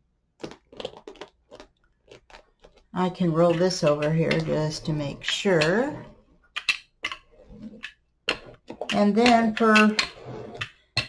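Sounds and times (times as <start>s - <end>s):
roller clicking on resin: 0.4s - 11.0s.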